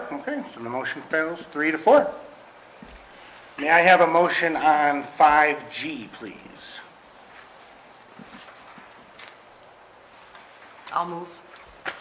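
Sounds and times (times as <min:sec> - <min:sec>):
paper rustling: 0:07.2 - 0:09.5.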